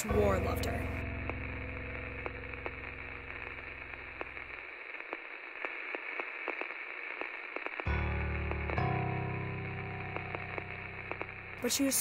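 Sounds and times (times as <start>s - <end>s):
crackling static hiss: 0.0s - 12.0s
low hum: 0.1s - 4.8s, 7.9s - 11.7s
clicks and pops: 0.5s - 11.6s.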